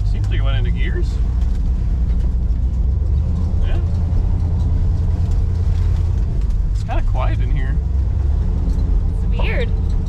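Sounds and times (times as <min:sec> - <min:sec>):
car engine and exhaust rumble: 0:00.0 - 0:10.0
road noise: 0:00.0 - 0:10.0.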